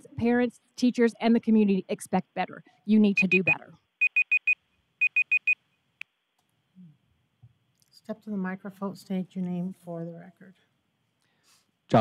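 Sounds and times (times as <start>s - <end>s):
electronic timer beeping: 3.2s - 5.6s.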